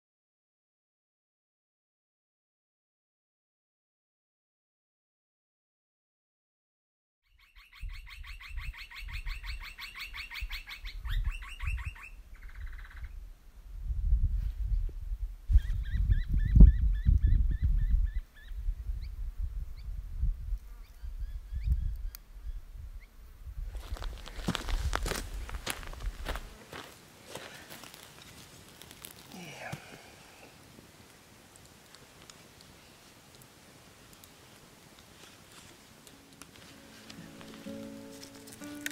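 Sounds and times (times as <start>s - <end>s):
wind buffeting microphone: 12.5s - 26.5s
sharp clicks and crackles: 38.3s - 38.9s.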